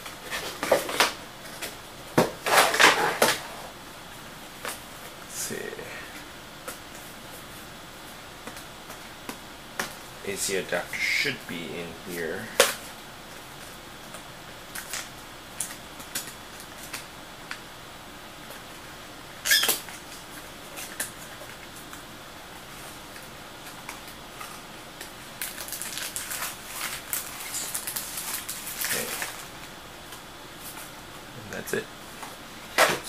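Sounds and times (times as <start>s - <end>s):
packaging rustling: 25.2s - 29.7s.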